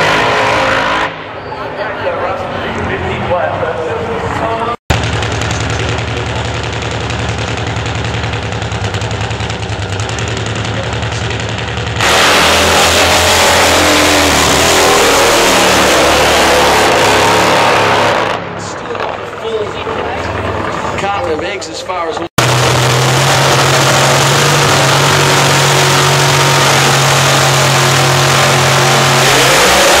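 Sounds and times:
racing motorcycle engine: 0.0 - 2.0, 3.7 - 30.0.

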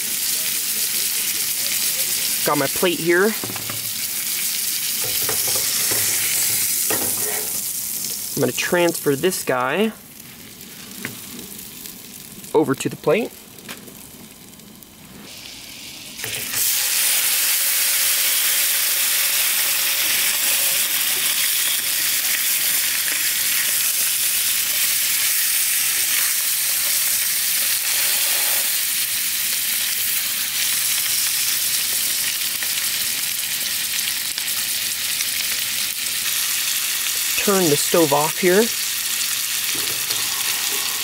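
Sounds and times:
fish sizzling in a frying pan: 0.0 - 12.5, 13.5 - 41.0
butter sizzling faintly: 0.0 - 18.0.

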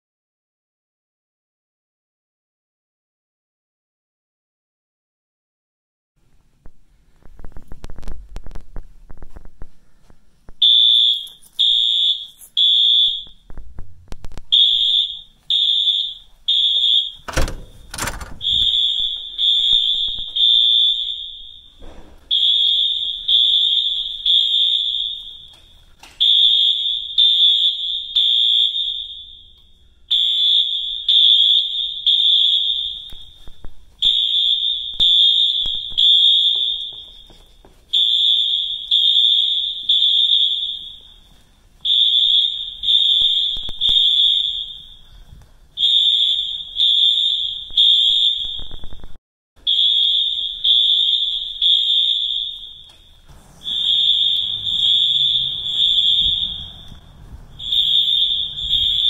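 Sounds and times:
fire alarm beeping: 10.6 - 13.5, 14.5 - 59.0.

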